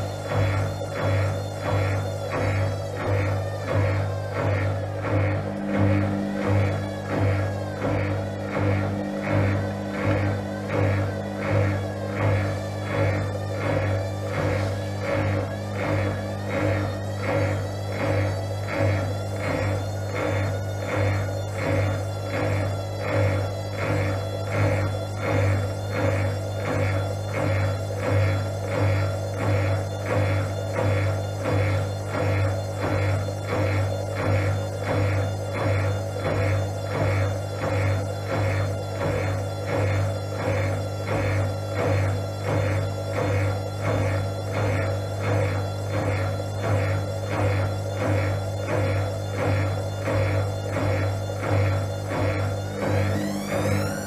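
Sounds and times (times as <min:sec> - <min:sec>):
washing machine spinning: 0:00.0 - 0:54.0.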